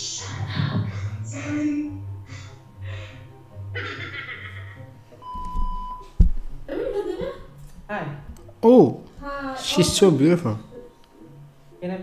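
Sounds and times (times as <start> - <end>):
electronic beep: 5.2 - 6.2.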